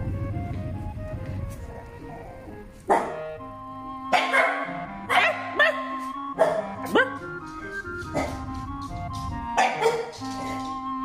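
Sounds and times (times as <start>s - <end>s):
light background music: 0.0s - 11.0s
puppy barking: 1.7s - 3.3s, 4.1s - 7.3s, 8.0s - 8.6s, 9.5s - 10.8s.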